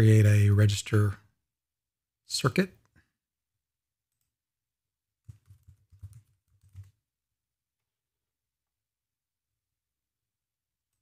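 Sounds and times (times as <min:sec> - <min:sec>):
faint computer keyboard typing: 0:05.2 - 0:07.0.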